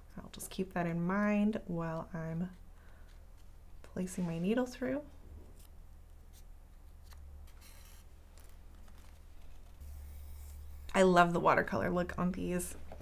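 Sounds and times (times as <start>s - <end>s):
low steady hum: 0.0s - 13.0s
paper rustling: 5.4s - 10.7s.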